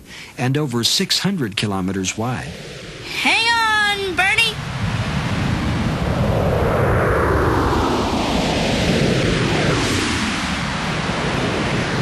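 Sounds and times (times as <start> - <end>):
spaceship flyby whoosh: 4.6 - 12.0.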